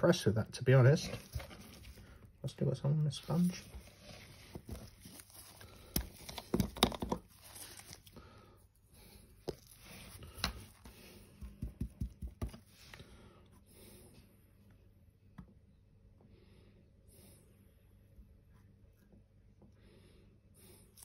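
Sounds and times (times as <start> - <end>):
sponge dabbing taps and knocks: 11.4 - 12.7.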